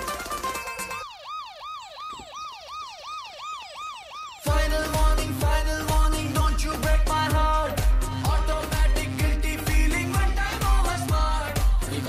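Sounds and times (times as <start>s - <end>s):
wailing siren-like sound effect: 0.4s - 4.9s
dance music beat: 4.3s - 12.0s.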